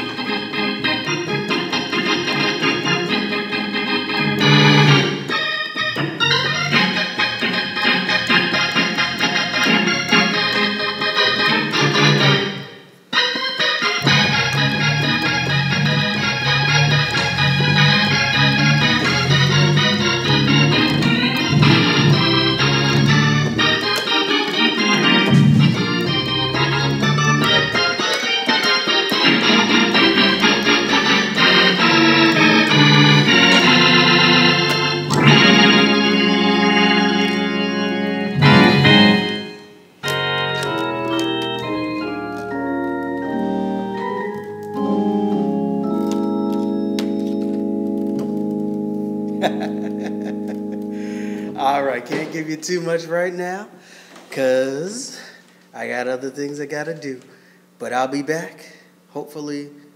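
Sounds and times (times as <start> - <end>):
organ playing gospel chords: 0.0 - 56.4.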